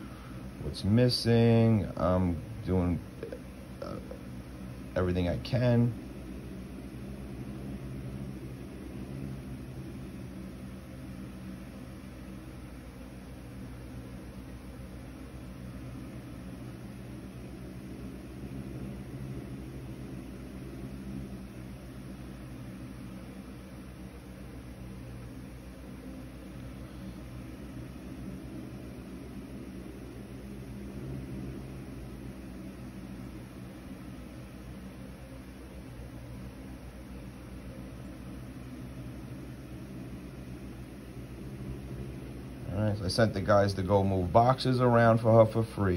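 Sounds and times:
steady low hum: 0:00.0 - 0:45.9.

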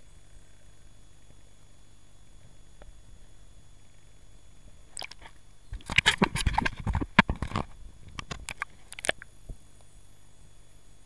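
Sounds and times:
water splashing against camera housing: 0:05.0 - 0:09.2.

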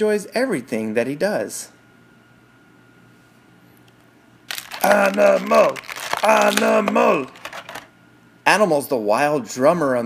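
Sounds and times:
person speaking: 0:04.5 - 0:07.8
plastic wrapping crinkling: 0:04.5 - 0:07.9.

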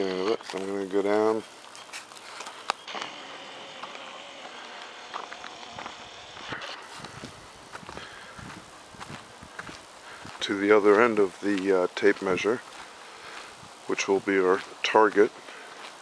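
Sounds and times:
faint steady hiss: 0:00.0 - 0:16.0
footsteps walking: 0:00.0 - 0:16.0.

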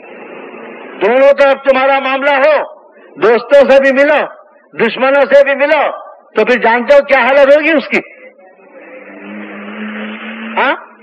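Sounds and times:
low hum with hiss: 0:00.0 - 0:06.4.

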